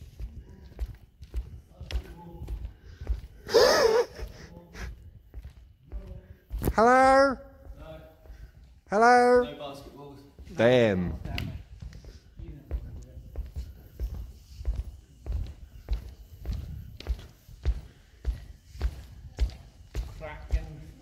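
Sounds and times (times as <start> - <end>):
footsteps on wooden floor: 0.0 - 9.0, 9.8 - 21.0.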